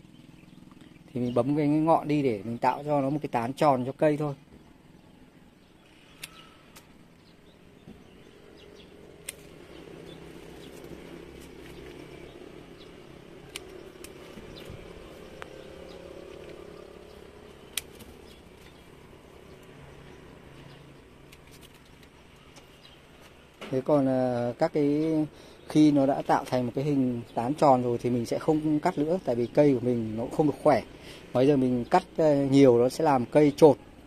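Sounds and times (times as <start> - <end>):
low outdoor rumble: 0.0 - 34.0
pruning shears clicking: 5.9 - 7.0, 9.0 - 19.8, 20.6 - 22.7.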